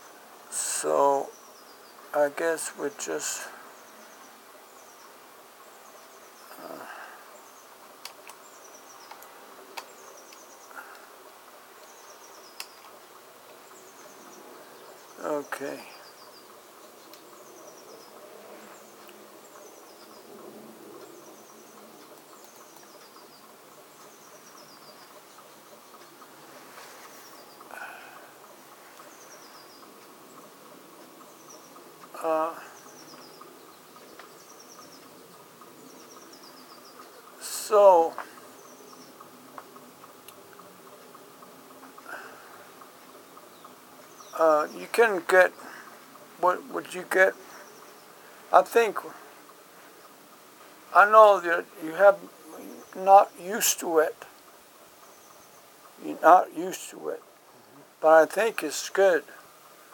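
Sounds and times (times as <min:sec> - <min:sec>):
room hiss: 0:00.0 - 0:59.9.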